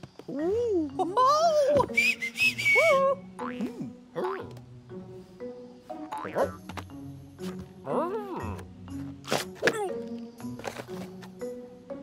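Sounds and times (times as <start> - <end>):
soft background music: 0.0 - 12.0
cartoon character vocalizations: 2.9 - 4.5, 7.9 - 8.6.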